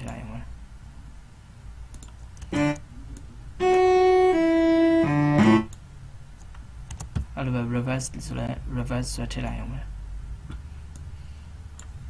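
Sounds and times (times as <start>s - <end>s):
sampled cello notes: 2.5s - 5.8s.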